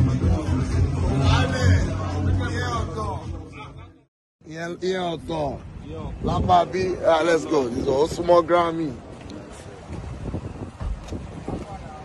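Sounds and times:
wind on microphone: 0:05.2 - 0:12.0
microphone handling bumps: 0:09.9 - 0:11.8.

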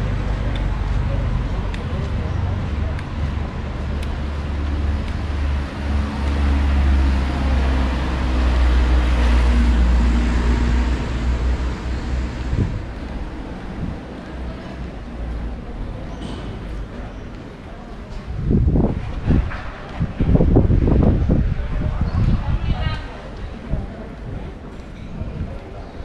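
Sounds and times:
motor vehicle passing: 0:00.0 - 0:14.7
steady low traffic rumble: 0:00.0 - 0:26.0.

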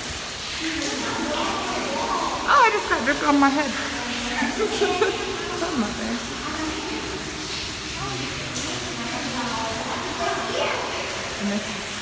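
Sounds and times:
low voices talking: 0:00.6 - 0:11.8.

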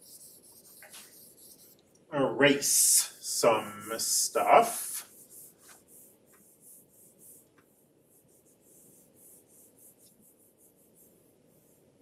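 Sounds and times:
stylus scratching on tablet screen: 0:00.0 - 0:12.0.

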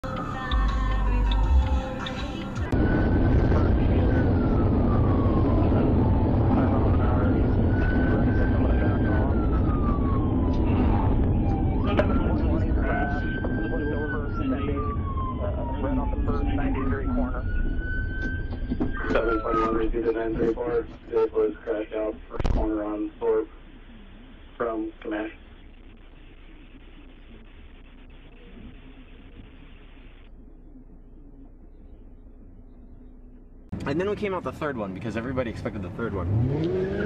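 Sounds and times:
siren wailing: 0:00.0 - 0:21.8, 0:36.2 - 0:37.0
vehicle and road rumble: 0:00.0 - 0:37.0.

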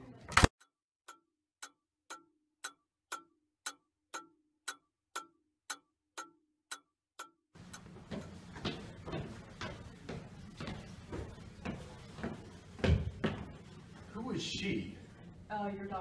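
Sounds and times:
clock ticking: 0:00.6 - 0:08.0.

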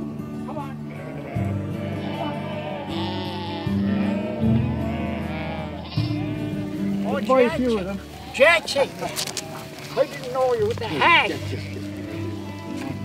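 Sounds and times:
sheep bleating: 0:00.6 - 0:13.0.

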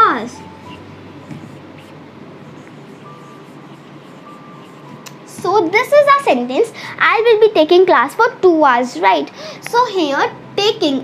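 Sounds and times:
steady low hiss: 0:00.0 - 0:11.0
marker squeaking on whiteboard: 0:00.5 - 0:05.4.

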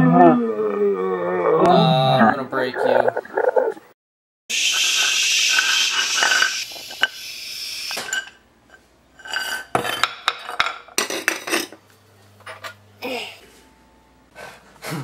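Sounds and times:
metal pot scraping: 0:04.8 - 0:07.1
metal and dishes clinking: 0:08.0 - 0:11.8.

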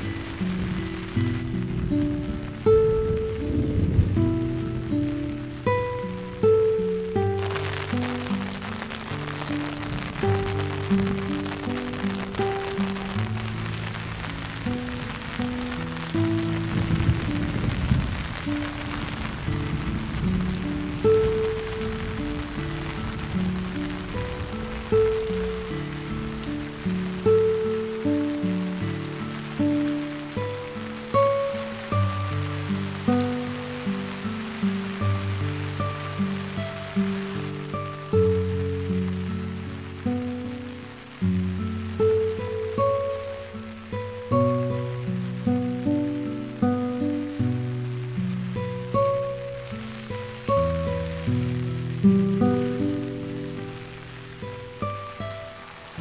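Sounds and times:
rain on foliage: 0:00.0 - 0:56.0
slow instrumental music: 0:00.0 - 0:56.0.

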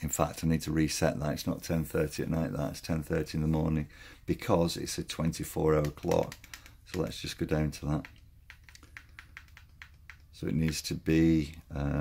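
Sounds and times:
remote control buttons clicking: 0:07.8 - 0:10.9.

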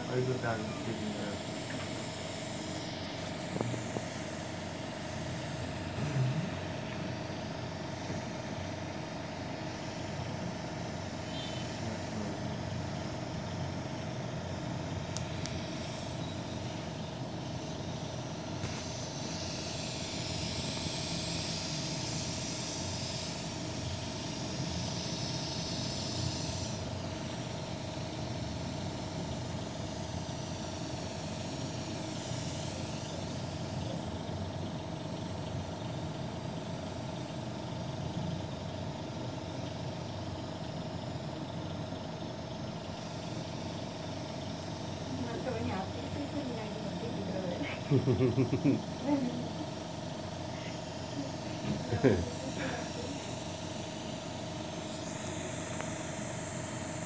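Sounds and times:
steady machine hum: 0:00.0 - 0:57.0
hiss: 0:02.8 - 0:08.4, 0:15.5 - 0:34.0, 0:50.4 - 0:57.0.

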